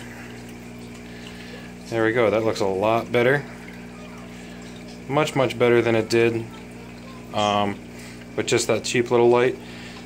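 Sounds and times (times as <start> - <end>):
aquarium filter hum: 0.0 - 10.0
water running into tank: 0.0 - 10.0.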